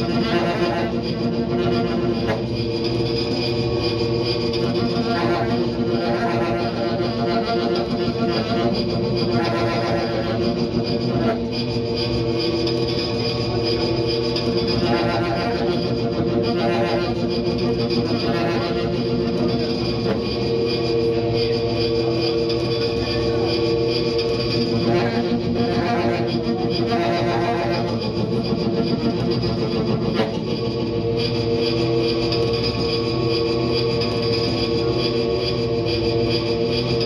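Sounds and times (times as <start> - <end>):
saxophone drone through effects: 0.0 - 37.0.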